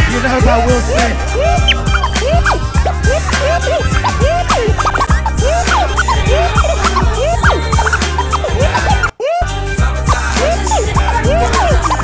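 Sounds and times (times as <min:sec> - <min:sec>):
music with steady bass beat: 0:00.0 - 0:12.0
record scratching: 0:00.9 - 0:09.1, 0:10.1 - 0:12.0.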